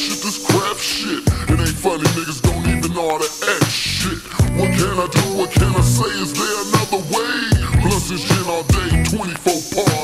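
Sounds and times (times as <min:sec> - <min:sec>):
slowed rapping over a beat: 0:00.0 - 0:10.0.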